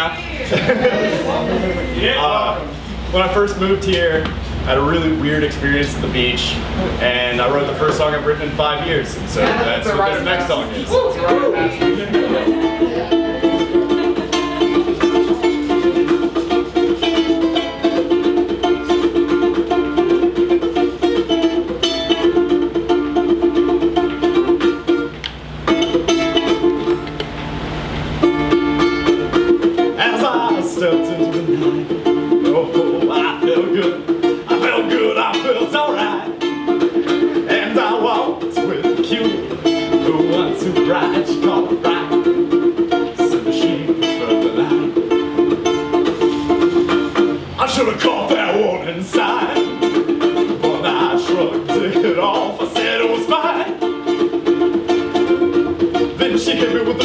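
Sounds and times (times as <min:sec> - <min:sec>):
ukulele strumming: 0:00.0 - 0:57.0.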